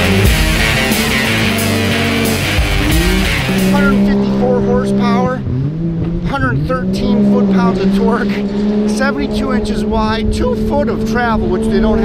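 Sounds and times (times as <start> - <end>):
engine running hard: 0.0 - 12.0.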